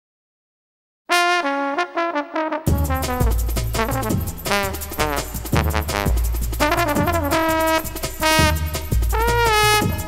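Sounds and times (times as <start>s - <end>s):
horn playing quick notes: 1.1s - 10.0s.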